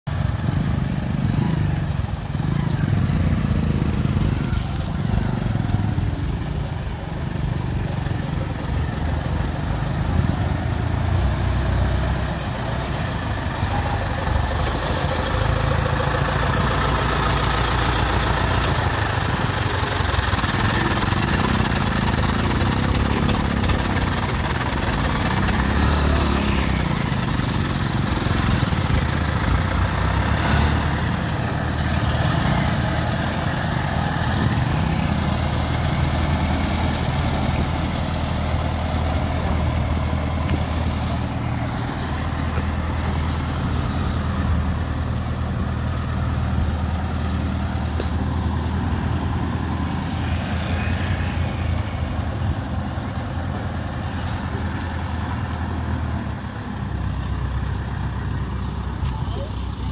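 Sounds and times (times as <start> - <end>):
crane diesel engine running: 0.1 - 59.9.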